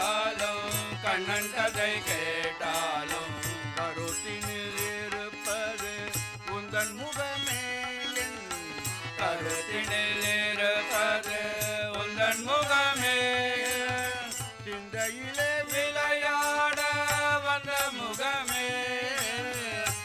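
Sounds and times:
harmonium: 0.0 - 20.0
men singing a chant-like melody: 0.0 - 20.0
tabla: 0.0 - 20.0.

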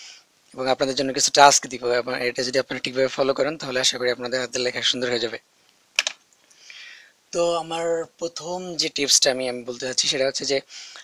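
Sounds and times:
sharp click: 6.0 - 6.4.

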